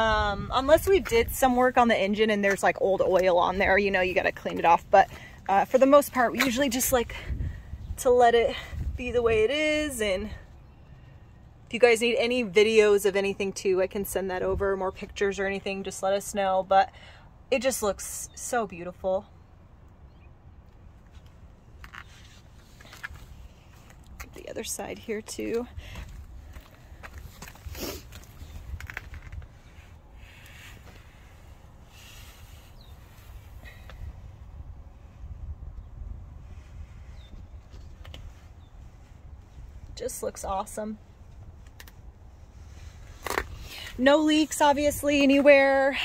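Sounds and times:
low steady rumble: 0.0 - 46.0.

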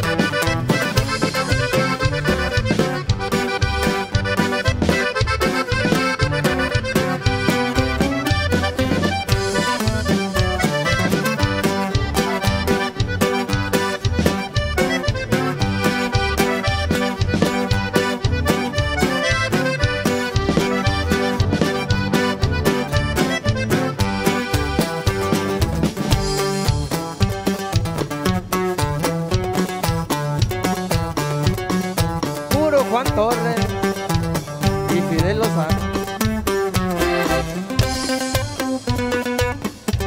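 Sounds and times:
button accordion melody: 0.0 - 40.0
drums: 0.0 - 40.0
electric bass: 0.0 - 40.0
strummed guitar: 0.0 - 40.0.

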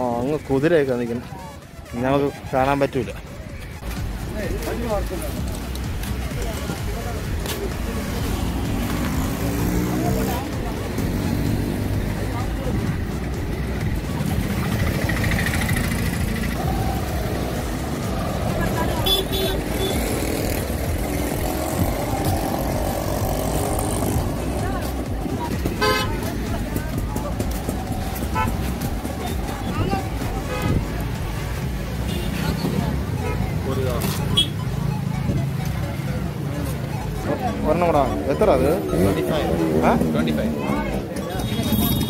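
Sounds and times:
vehicle engines running: 0.0 - 42.0
voices of passers-by: 0.0 - 42.0.

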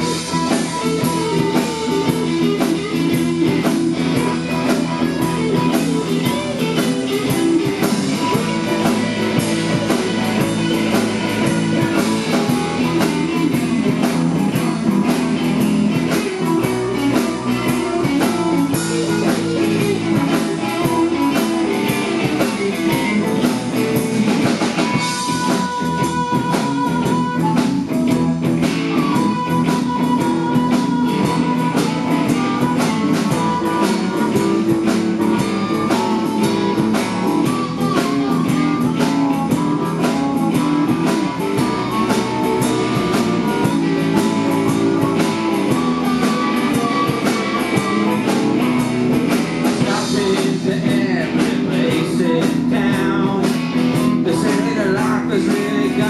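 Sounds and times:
lead guitar sustained notes: 0.0 - 56.0
live blues band playing: 0.0 - 56.0.

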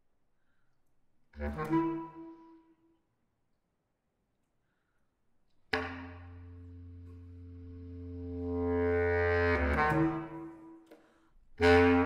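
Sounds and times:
bass clarinet: 1.3 - 2.8, 5.7 - 10.8, 11.5 - 12.0.

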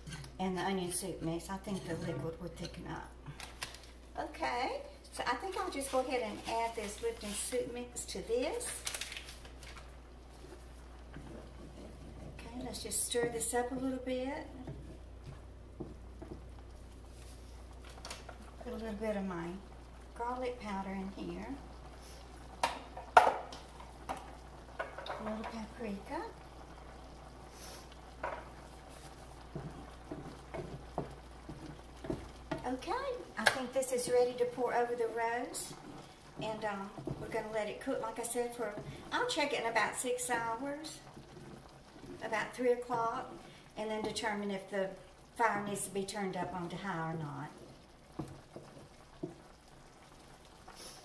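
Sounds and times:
faint steady hum: 0.0 - 51.0
gravy sizzling faintly in a skillet: 0.0 - 51.0
spatula scraping a skillet: 27.5 - 32.6.

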